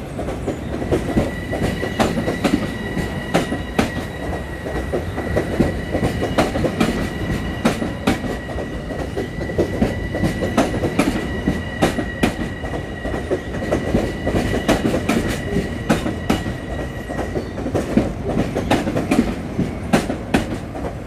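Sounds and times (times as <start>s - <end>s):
train rumble: 0.0s - 21.0s
train wheels clicking over rail joints: 0.2s - 21.0s.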